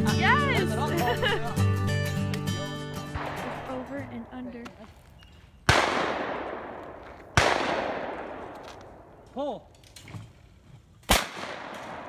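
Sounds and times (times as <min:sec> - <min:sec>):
shotgun shots with echo: 0:05.6 - 0:09.1, 0:11.1 - 0:12.0.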